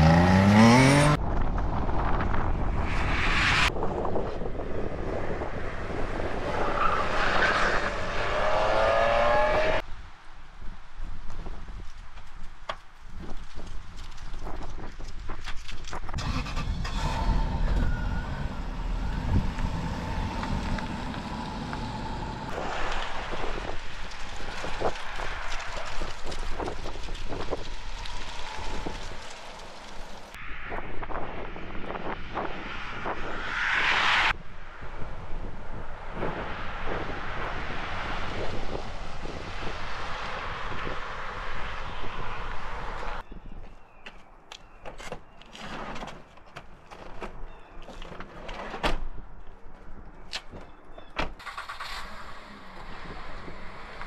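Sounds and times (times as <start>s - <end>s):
car passing by: 2.7s - 4.5s, 32.3s - 43.2s
car engine setting off: 51.4s - 54.0s.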